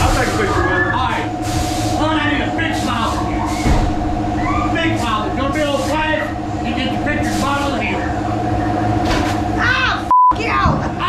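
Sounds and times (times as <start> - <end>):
indistinct voices: 0.0 - 11.0
low mechanical hum: 0.0 - 11.0.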